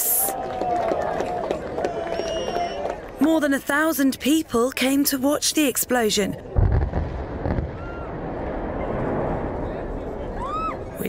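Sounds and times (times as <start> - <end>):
short whistles: 2.1 - 2.8
low explosion boom: 6.5 - 11.0.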